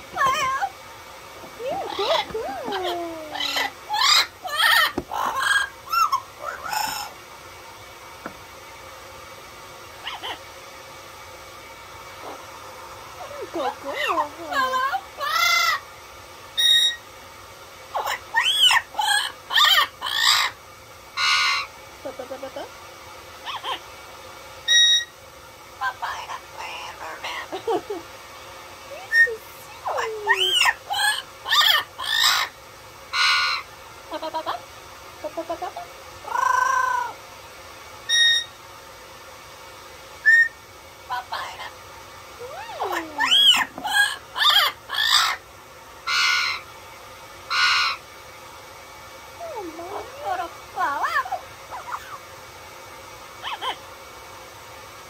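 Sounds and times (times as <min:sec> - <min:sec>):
parrot calling and squawking: 0:00.0 - 0:00.8, 0:01.4 - 0:07.2, 0:09.9 - 0:10.5, 0:12.1 - 0:15.9, 0:16.6 - 0:17.1, 0:17.9 - 0:20.6, 0:21.2 - 0:22.8, 0:23.4 - 0:23.9, 0:24.6 - 0:25.2, 0:25.8 - 0:27.8, 0:29.0 - 0:37.2, 0:38.1 - 0:38.6, 0:40.2 - 0:41.8, 0:42.4 - 0:46.7, 0:47.5 - 0:48.1, 0:49.4 - 0:52.3, 0:53.4 - 0:53.9
parrot whistle: 0:01.7 - 0:07.1, 0:16.6 - 0:17.0, 0:18.0 - 0:20.6, 0:21.2 - 0:21.7, 0:24.6 - 0:25.2, 0:33.1 - 0:33.7, 0:38.1 - 0:38.6, 0:40.2 - 0:40.6, 0:46.1 - 0:46.6, 0:47.5 - 0:48.0, 0:53.4 - 0:53.8.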